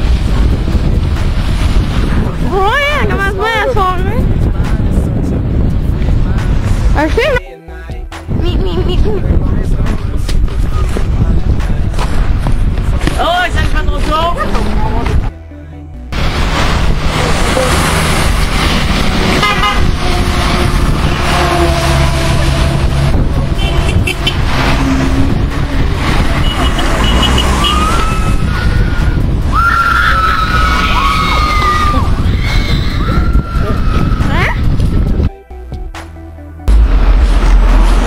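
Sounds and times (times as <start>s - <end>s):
loud traffic rumble: 0.0s - 38.0s
car horns honking: 19.0s - 28.8s
people shouting: 27.2s - 34.5s.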